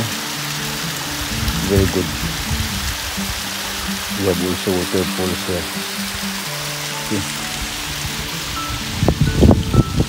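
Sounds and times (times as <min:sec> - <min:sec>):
background music: 0:00.0 - 0:10.0
waterfall rushing: 0:00.0 - 0:10.0.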